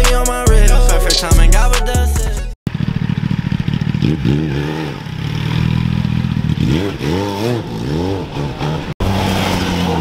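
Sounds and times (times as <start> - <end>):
motorcycle engine revving: 2.6 - 10.0.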